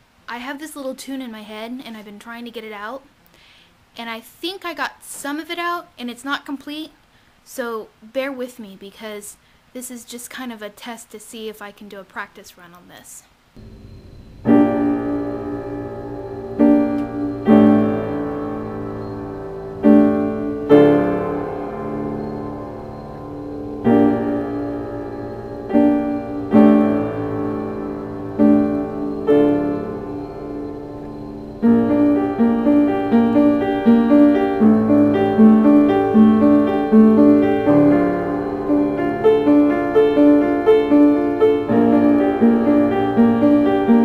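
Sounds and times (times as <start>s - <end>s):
slow piano chords: 13.6s - 44.0s.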